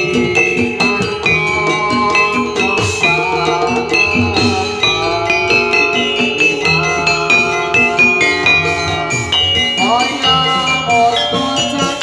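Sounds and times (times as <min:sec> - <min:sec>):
drum strokes: 0:00.0 - 0:12.0
metallophones and gongs ringing: 0:00.0 - 0:12.0.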